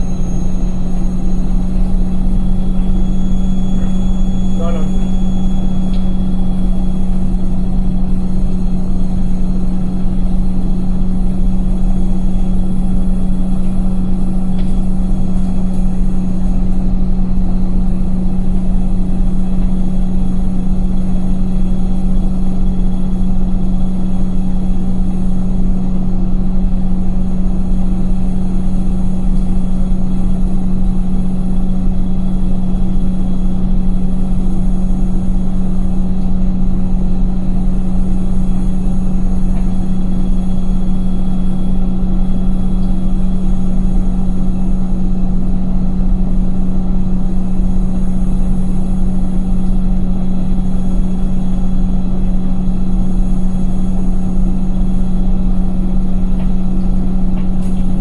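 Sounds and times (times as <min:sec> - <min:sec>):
motor hum: 0:00.0 - 0:58.0
washing machine drum spinning: 0:00.0 - 0:58.0.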